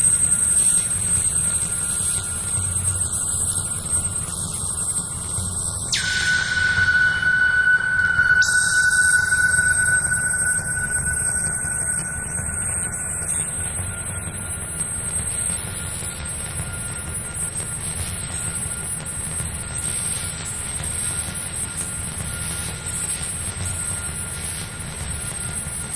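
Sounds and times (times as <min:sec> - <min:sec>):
high whistling tone: 0:05.6 - 0:16.2
electronic drone music: 0:05.9 - 0:14.5.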